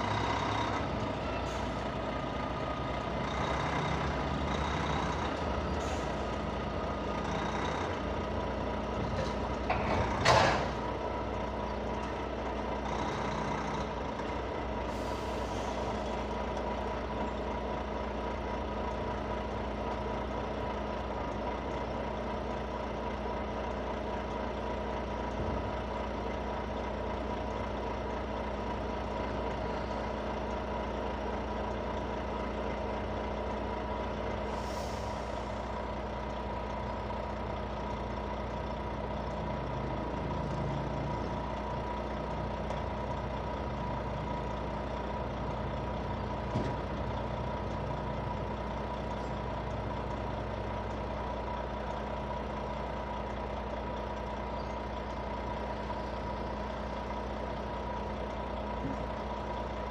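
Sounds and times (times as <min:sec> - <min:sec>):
diesel truck engine idling: 0:00.0 - 0:59.9
air hissing: 0:34.5 - 0:35.5.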